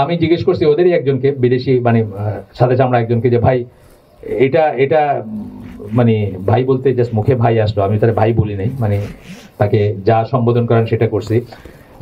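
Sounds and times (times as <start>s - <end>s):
man speaking into microphone: 0.0s - 11.7s.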